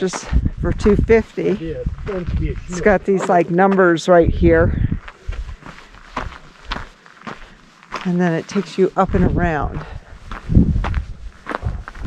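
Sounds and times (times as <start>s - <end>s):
footsteps crunching on gravel: 0.0s - 12.0s.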